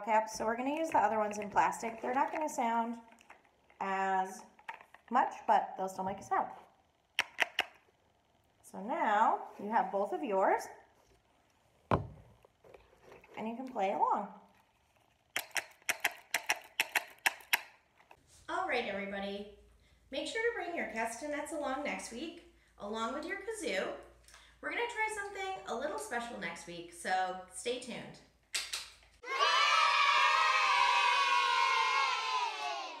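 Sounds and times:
castanets clicking: 0:00.6 - 0:05.2, 0:07.2 - 0:07.8, 0:14.9 - 0:18.2
children cheering: 0:29.2 - 0:33.0.

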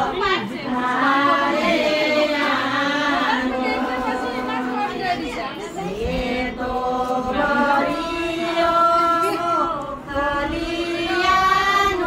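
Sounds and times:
people chattering: 0:00.0 - 0:12.0
women singing in unison: 0:00.0 - 0:12.0.

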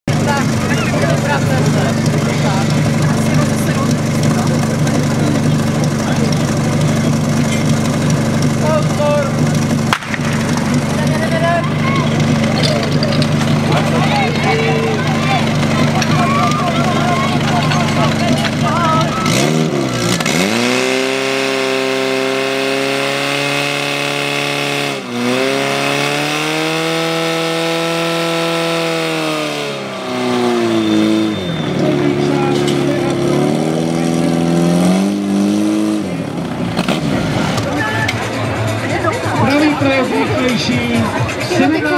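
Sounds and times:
pump engine idling and revving: 0:00.0 - 0:41.9.

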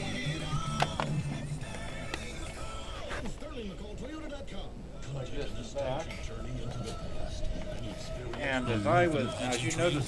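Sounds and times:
radio music through small speaker: 0:00.0 - 0:10.0.

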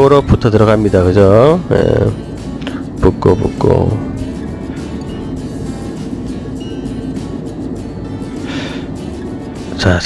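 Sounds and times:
background music: 0:00.0 - 0:10.0
low even rumble: 0:00.0 - 0:10.0.

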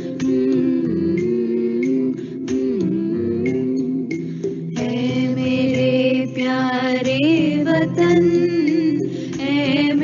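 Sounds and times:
girls singing: 0:00.0 - 0:10.0.

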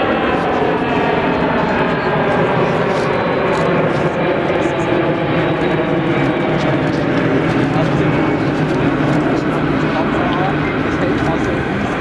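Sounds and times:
jet engines humming: 0:00.0 - 0:12.0.

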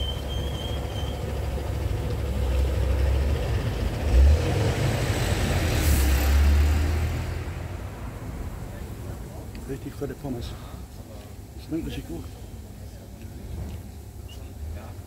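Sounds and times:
vehicle passing with low rumble: 0:00.0 - 0:09.5.

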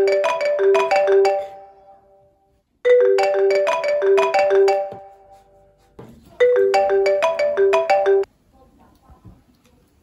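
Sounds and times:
marimba phone ringtone: 0:00.0 - 0:02.2, 0:02.8 - 0:05.4, 0:06.4 - 0:08.3.

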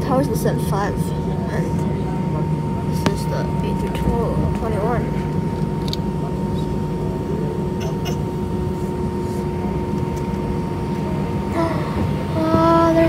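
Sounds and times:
jet engines low rumble: 0:00.0 - 0:13.0
thin steady whine: 0:00.0 - 0:13.0.

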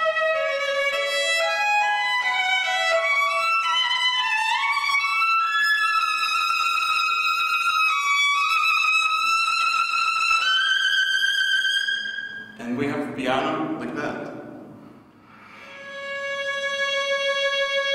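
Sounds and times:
solo violin playing softly: 0:00.0 - 0:12.4, 0:15.7 - 0:17.9.

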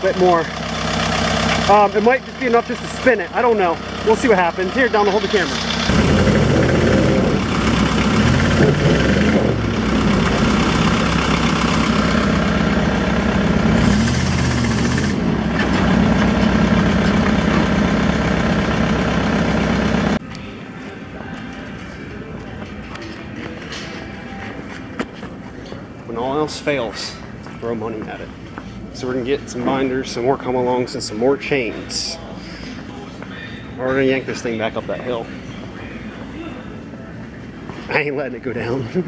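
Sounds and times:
truck engine revving under load: 0:05.2 - 0:20.2.

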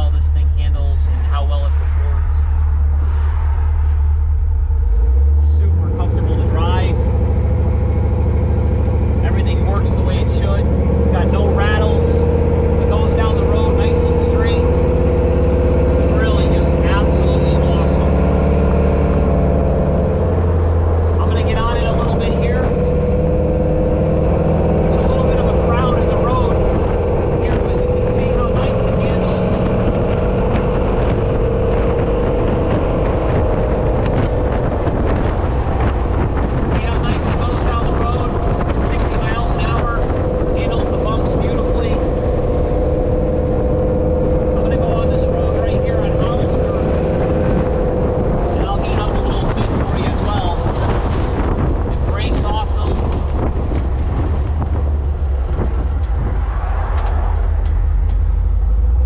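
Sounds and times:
car engine driving: 0:00.0 - 0:59.0.

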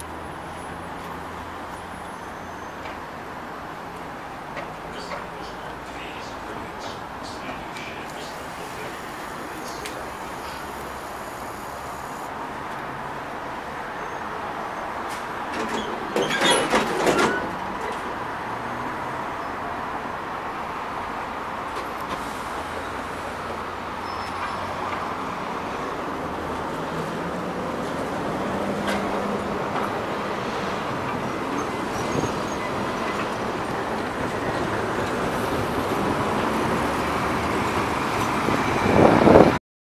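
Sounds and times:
street traffic noise: 0:00.0 - 0:39.6
tram low rumble: 0:00.0 - 0:39.6
tram hiss: 0:04.1 - 0:12.6, 0:21.6 - 0:39.5
wheels running on rails: 0:07.4 - 0:12.3.

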